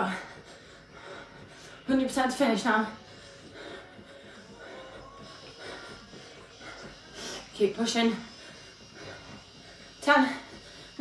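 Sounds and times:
footfalls jogging on carpet: 0.0s - 11.0s
heavy breathing: 0.0s - 11.0s.

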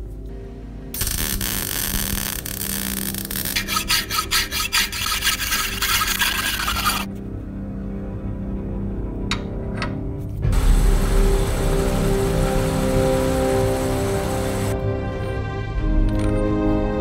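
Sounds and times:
file rasping on steel pipe: 3.3s - 7.1s.

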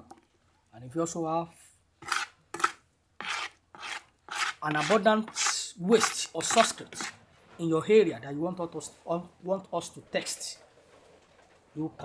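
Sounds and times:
stirring wet slurry in a drum: 2.0s - 7.2s.

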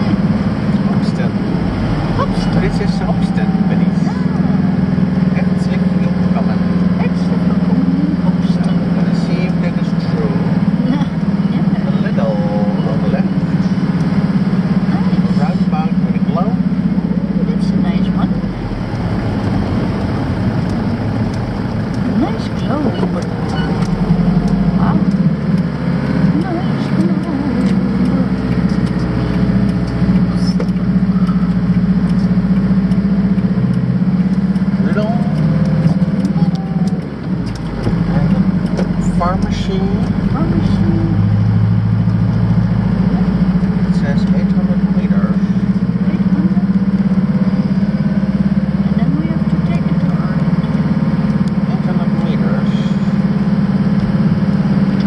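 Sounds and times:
low engine drone: 0.0s - 55.0s
tyre noise on wet road: 0.0s - 55.0s.

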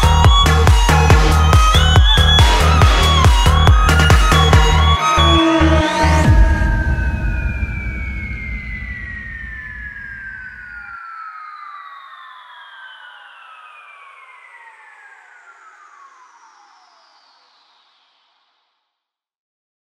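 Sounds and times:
low rumble: 0.0s - 10.9s
synth tones gliding downward: 0.0s - 16.9s.

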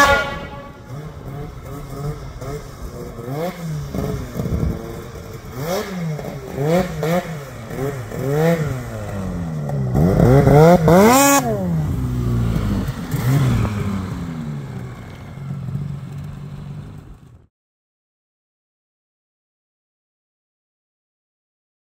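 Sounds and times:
snowmobile engine revving: 0.0s - 16.7s.

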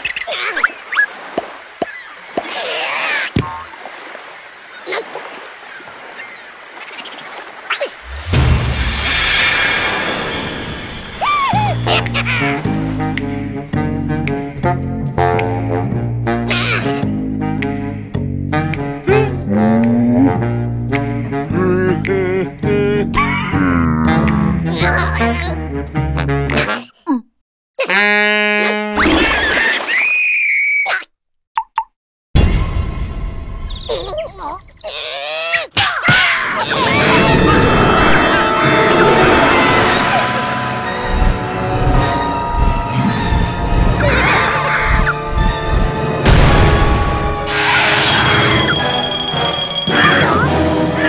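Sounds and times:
low rumble: 8.0s - 11.0s, 36.8s - 49.0s
shimmering swell: 8.0s - 11.9s, 36.8s - 44.9s, 46.3s - 50.9s
falling whistle-like glides: 8.8s - 11.7s, 36.7s - 44.5s, 47.3s - 50.3s
cartoon horn blowing: 27.8s - 29.0s, 36.8s - 45.4s.

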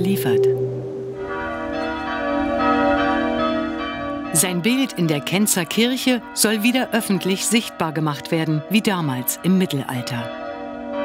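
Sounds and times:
church bells pealing: 0.0s - 11.0s.

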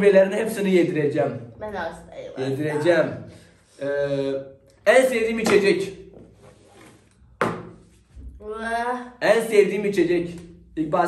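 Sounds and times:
knock on a table: 7.4s - 7.8s.

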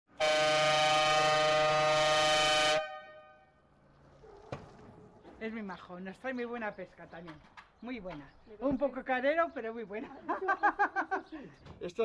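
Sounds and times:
vehicle horn blast: 0.1s - 3.5s.

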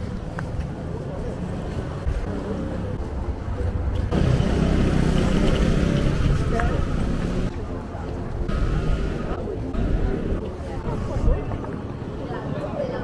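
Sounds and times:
passers-by talking: 0.3s - 13.0s.

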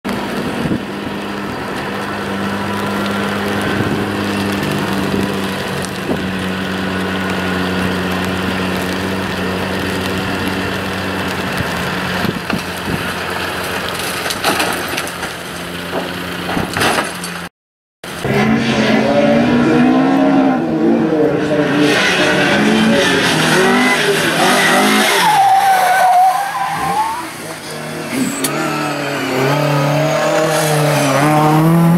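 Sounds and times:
knocks and scrapes of car: 14.0s - 17.5s.

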